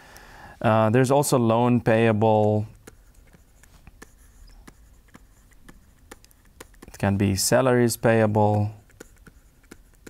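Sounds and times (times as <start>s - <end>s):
stylus tapping and scratching on screen: 1.3s - 10.0s.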